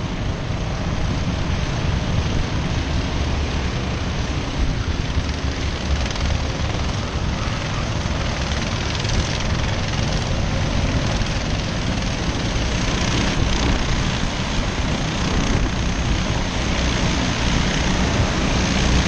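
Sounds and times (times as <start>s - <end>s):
distant kart engines buzzing: 0.0s - 19.0s
wind rumbling on microphone: 0.0s - 19.0s.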